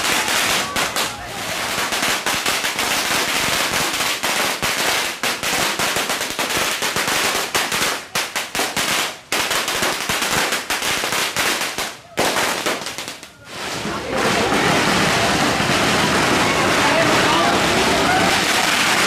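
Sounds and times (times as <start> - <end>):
firecrackers crackling: 0.0 - 19.0.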